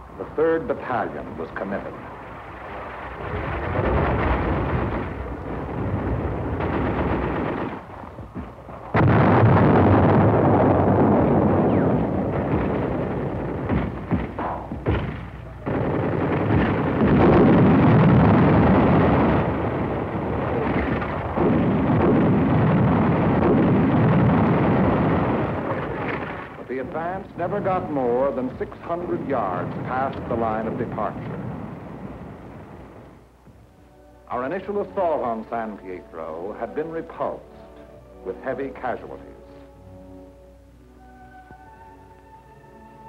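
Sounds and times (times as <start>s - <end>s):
artillery shell bursts: 0.2s - 33.3s
rifle and machine-gun fire: 2.7s - 8.2s, 8.8s - 33.0s.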